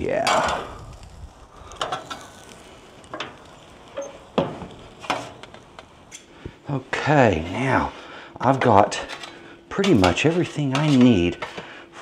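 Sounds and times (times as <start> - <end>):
grill lid shutting: 0.2 - 0.8, 1.8 - 2.5, 3.1 - 6.3
spatula clinking on grill grate: 8.6 - 11.7.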